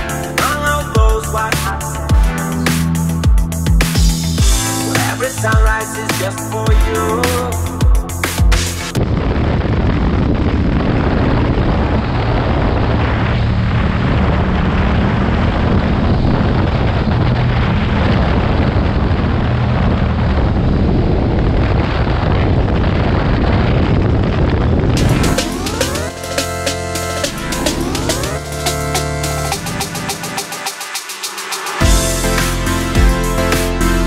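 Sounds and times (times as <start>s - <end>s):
music: 0.0s - 9.0s, 25.0s - 34.0s
motorcycle engine running: 3.2s - 5.8s
wind rush: 7.4s - 33.5s.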